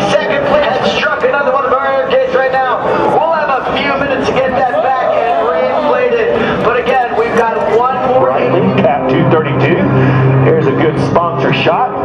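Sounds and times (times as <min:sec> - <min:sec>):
man talking: 0:00.0 - 0:12.0
people talking: 0:00.0 - 0:12.0.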